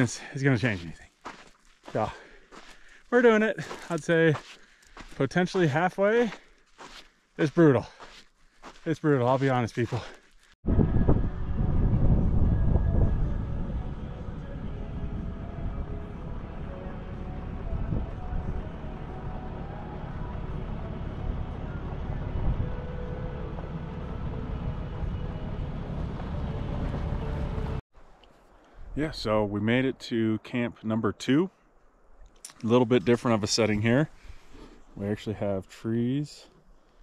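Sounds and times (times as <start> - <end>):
wind buffeting microphone: 10.6 - 16.2.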